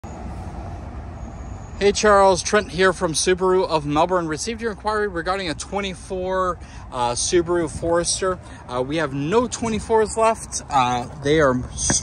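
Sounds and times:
low outdoor rumble: 0:00.1 - 0:12.0
man speaking: 0:01.8 - 0:12.0.

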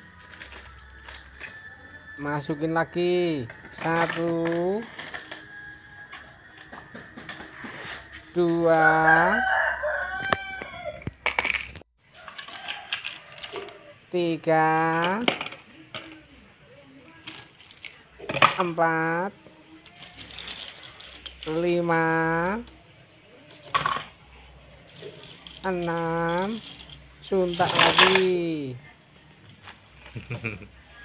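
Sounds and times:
plastic toys clattering in basket: 0:00.0 - 0:10.4, 0:11.0 - 0:13.8, 0:14.8 - 0:16.4, 0:17.1 - 0:18.8, 0:19.7 - 0:22.7, 0:23.4 - 0:24.2, 0:24.8 - 0:28.7.

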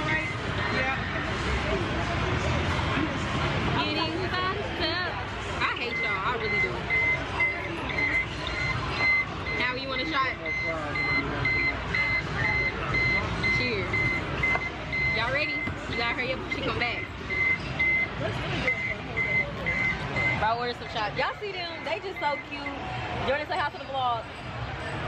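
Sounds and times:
people talking: 0:00.0 - 0:25.0
high electronic beep: 0:05.8 - 0:20.5.

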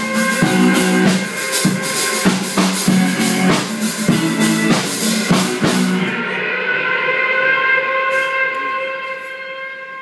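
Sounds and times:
electric guitar chord ringing: 0:00.0 - 0:06.7
drums: 0:00.0 - 0:09.5.

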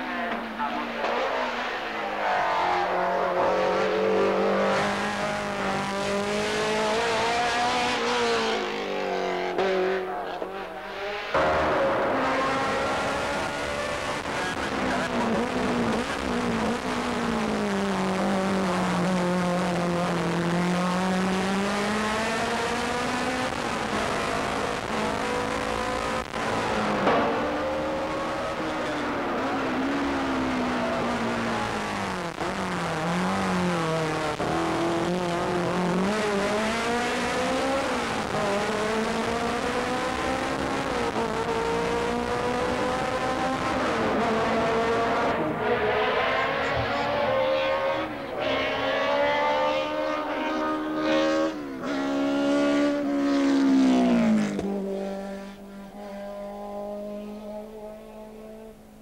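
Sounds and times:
race car engine revving: 0:00.2 - 0:58.9.

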